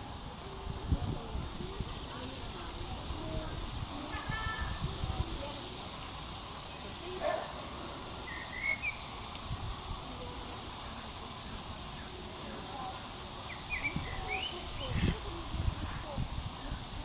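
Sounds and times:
steady high hiss: 0.0s - 17.0s.

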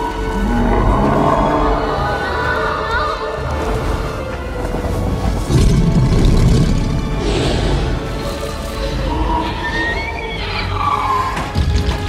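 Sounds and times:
horror film score: 0.0s - 12.0s
deep loud rumbling: 4.3s - 8.3s.

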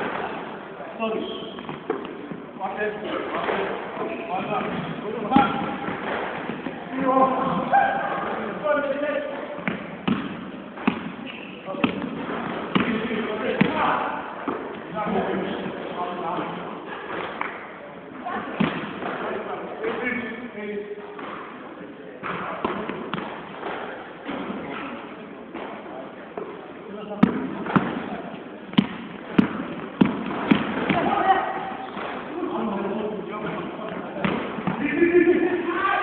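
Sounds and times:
players' voices: 0.0s - 36.0s
basketball bouncing on floor: 9.6s - 11.2s, 28.7s - 31.2s.

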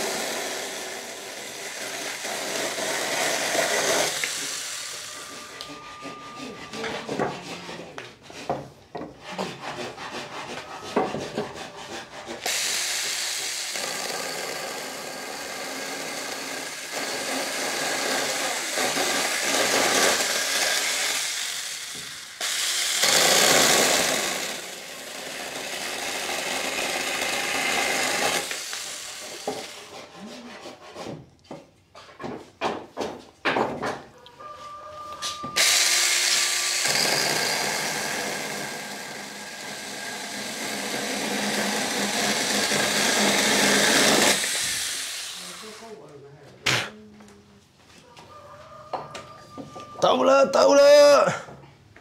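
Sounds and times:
power saw cutting wood: 0.0s - 8.6s, 9.2s - 30.6s, 35.6s - 46.0s.

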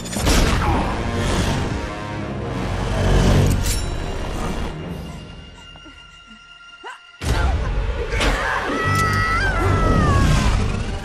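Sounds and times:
dramatic score music: 0.0s - 11.0s.

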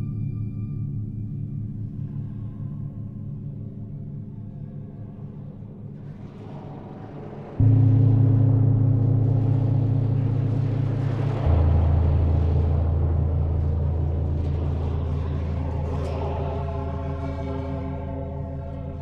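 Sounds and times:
deep drone: 0.0s - 19.0s
loud low gong tone: 0.0s - 19.0s.

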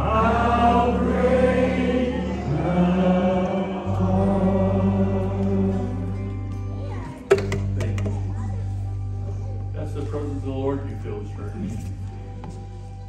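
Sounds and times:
group singing slow song: 0.0s - 6.6s
low instrumental accompaniment: 0.0s - 13.0s.

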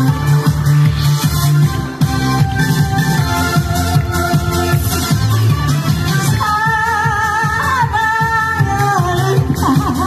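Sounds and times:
disco backing track: 0.0s - 10.0s
woman singing into a microphone: 6.4s - 10.0s.

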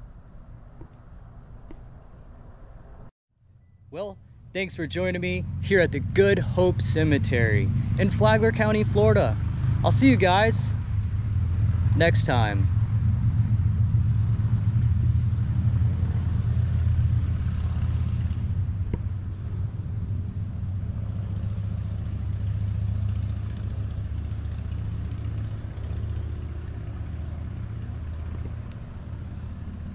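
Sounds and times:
low outdoor rumble: 0.0s - 29.9s.

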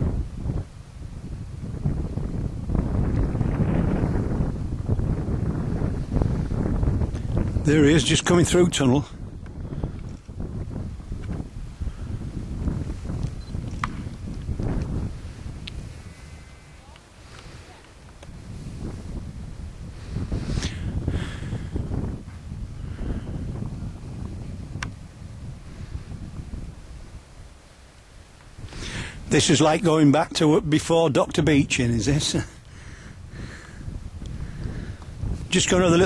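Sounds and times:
wind gusting on microphone: 0.0s - 36.0s.

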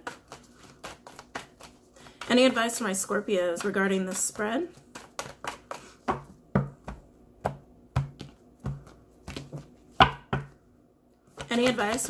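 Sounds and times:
cards slapping while shuffled: 0.1s - 2.4s, 4.8s - 6.3s.

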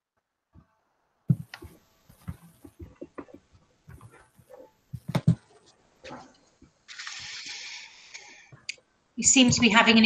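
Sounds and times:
steady hiss of noise: 1.2s - 10.0s.

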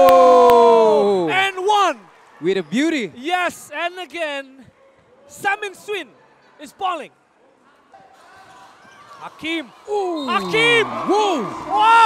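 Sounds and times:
faint arena background: 0.0s - 12.0s.

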